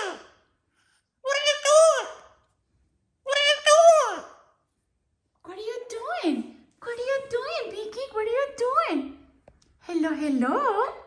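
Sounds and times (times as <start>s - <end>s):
parrot calling: 0.0s - 0.5s, 1.2s - 2.5s, 3.2s - 4.6s.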